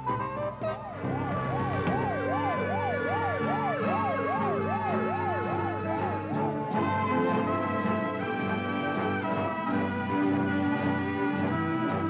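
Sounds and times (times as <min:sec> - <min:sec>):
music: 0:00.0 - 0:12.0
ambulance siren wailing: 0:00.5 - 0:12.0.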